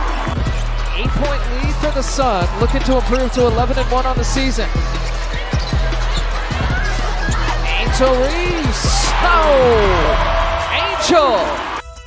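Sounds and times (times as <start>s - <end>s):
arena noise: 0.0s - 11.8s
broadcast voices: 0.8s - 11.7s.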